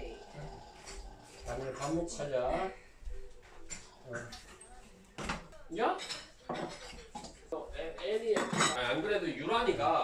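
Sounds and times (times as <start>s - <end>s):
dishes set on wooden table: 3.6s - 7.5s, 8.3s - 9.0s.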